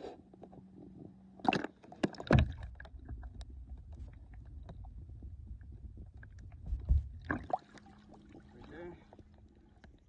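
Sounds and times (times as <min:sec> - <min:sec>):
low underwater rumble: 0:02.1 - 0:10.0.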